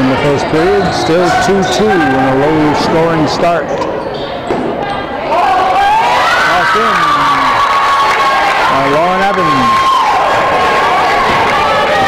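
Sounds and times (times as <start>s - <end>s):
spectators calling out: 0.0s - 12.0s.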